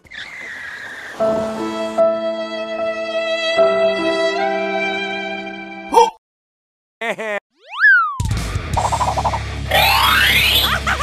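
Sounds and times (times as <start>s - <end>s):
cartoon boing: 7.6s - 8.2s
rising whines: 8.8s - 10.7s.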